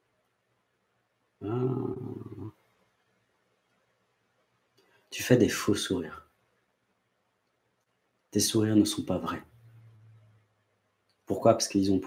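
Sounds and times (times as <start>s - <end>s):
man saying ah: 1.4s - 2.5s.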